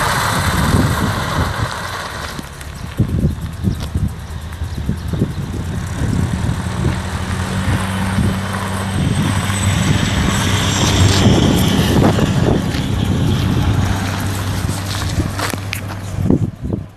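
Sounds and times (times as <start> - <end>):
car engine idling: 0.0 - 16.9
noisy rustle: 0.0 - 16.9.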